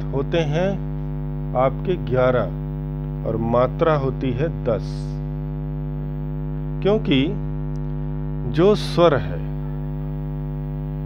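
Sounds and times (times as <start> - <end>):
person speaking: 0.0 - 0.9, 1.5 - 2.6
electrical mains hum: 0.0 - 11.0.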